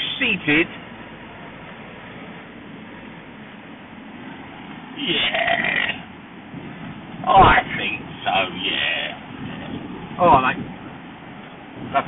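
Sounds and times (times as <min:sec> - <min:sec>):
car road and engine noise: 0:00.0 - 0:12.0.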